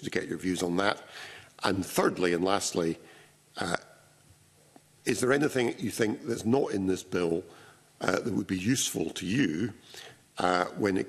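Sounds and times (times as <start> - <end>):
man saying uh: 5.1 - 7.4.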